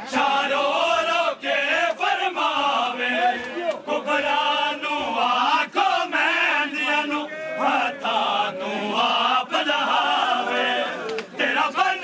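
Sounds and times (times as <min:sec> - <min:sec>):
men chanting together: 0:00.0 - 0:12.0.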